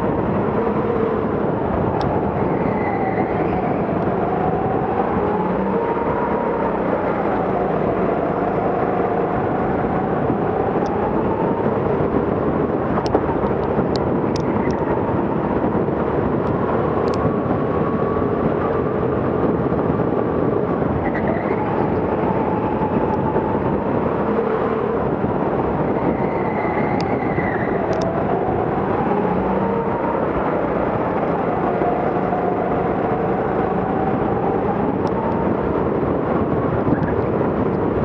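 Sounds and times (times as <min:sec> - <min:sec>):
wind noise: 0:00.0 - 0:38.0.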